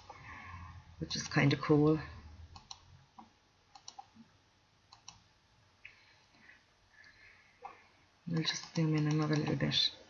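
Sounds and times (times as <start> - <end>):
faint computer mouse clicks: 2.6 - 4.1, 4.9 - 5.2.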